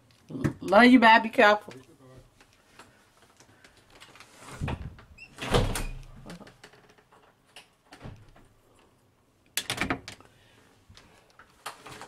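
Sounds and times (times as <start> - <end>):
door banging shut: 4.6 - 6.3.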